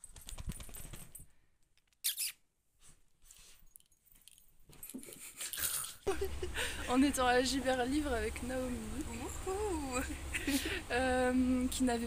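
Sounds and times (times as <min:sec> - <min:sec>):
rustling fur and handling noise: 0:02.8 - 0:05.3.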